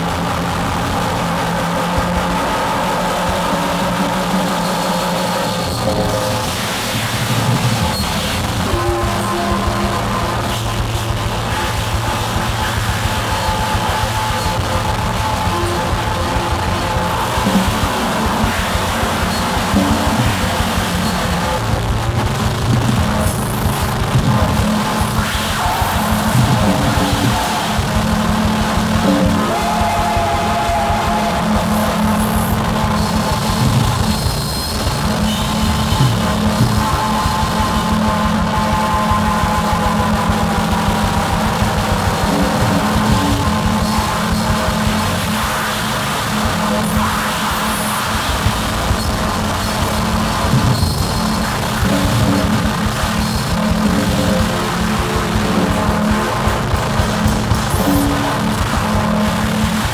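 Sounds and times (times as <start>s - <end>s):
electronic synthesizer drones: 0.0s - 59.9s.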